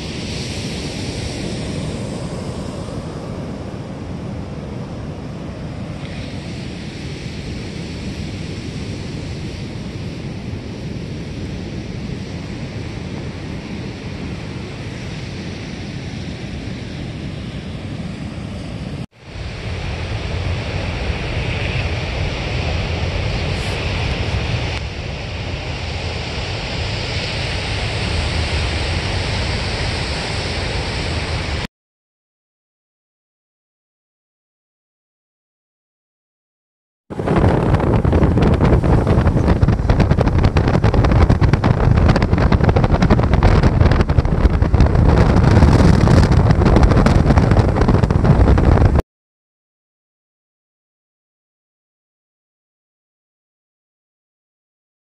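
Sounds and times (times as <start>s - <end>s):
wind rumbling on microphone: 0.0s - 31.7s, 37.1s - 49.0s
surf: 19.2s - 31.7s, 37.1s - 49.0s.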